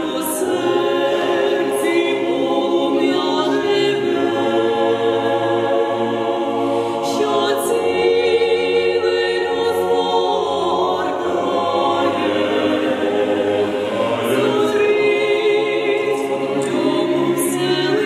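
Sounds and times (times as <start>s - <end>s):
mixed choir singing unaccompanied: 0.0s - 18.0s.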